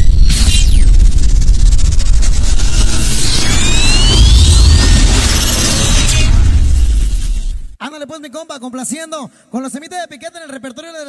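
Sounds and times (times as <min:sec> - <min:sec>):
rising whistling sweeps: 0:00.0 - 0:07.6
deep rumble with booms: 0:00.0 - 0:07.8
falling whoosh: 0:00.0 - 0:07.8.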